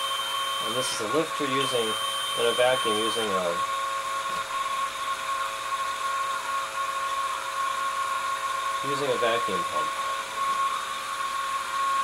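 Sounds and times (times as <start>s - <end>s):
lab equipment whine: 0.0s - 6.4s.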